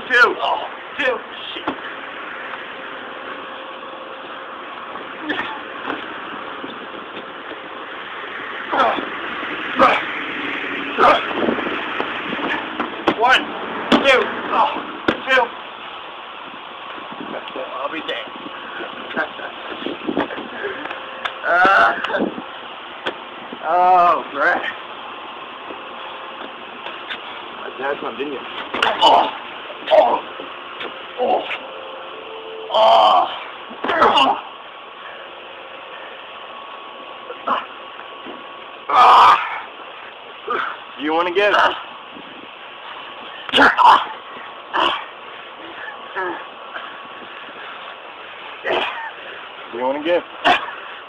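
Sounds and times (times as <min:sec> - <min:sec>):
steady background hiss: 0:00.0 - 0:51.0
people shouting and calling: 0:08.6 - 0:15.6, 0:38.9 - 0:39.8, 0:43.5 - 0:47.0.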